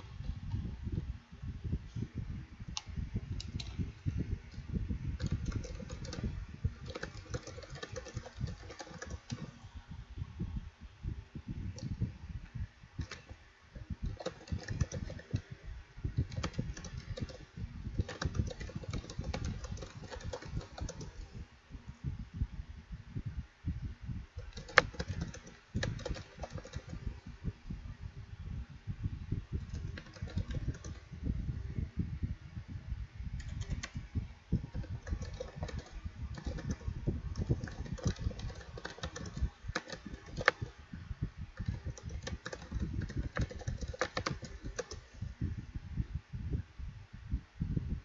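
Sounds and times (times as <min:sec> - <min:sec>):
computer keyboard typing: 0:05.2 - 0:09.6, 0:13.0 - 0:13.3, 0:14.0 - 0:15.5, 0:16.2 - 0:21.3, 0:24.4 - 0:27.0, 0:29.6 - 0:31.0, 0:33.4 - 0:34.0, 0:34.6 - 0:40.8, 0:41.6 - 0:45.1.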